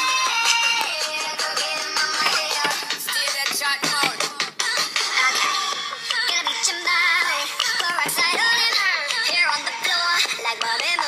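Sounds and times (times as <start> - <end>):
backing music: 0.0 - 11.0
woman singing pop song: 0.0 - 11.0.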